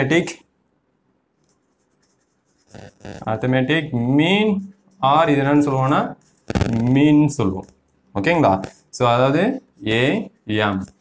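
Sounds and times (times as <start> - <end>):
chalk scratching on blackboard: 1.5 - 3.5, 4.7 - 6.6.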